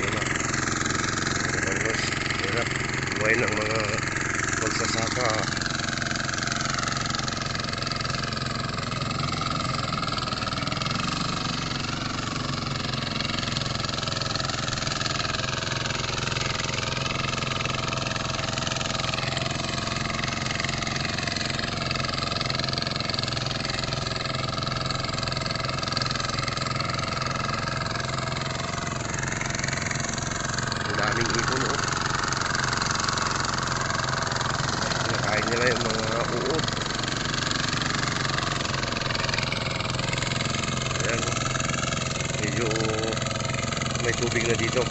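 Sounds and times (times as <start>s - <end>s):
small engine running: 0.0s - 44.9s.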